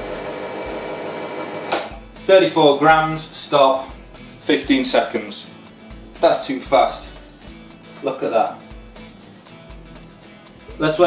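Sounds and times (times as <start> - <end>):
espresso machine pump humming: 0.0 - 2.0.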